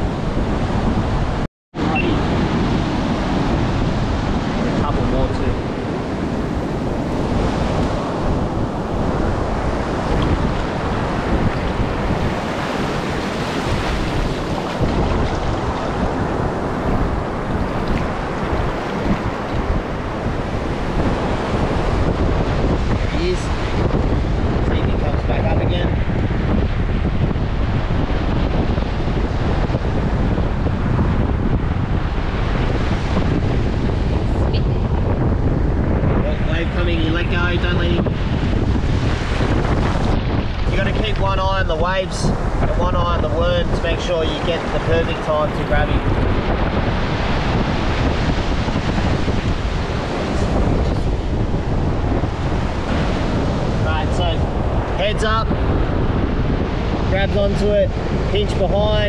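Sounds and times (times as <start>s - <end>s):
ocean surf breaking: 0.0s - 59.0s
wind buffeting microphone: 0.0s - 59.0s.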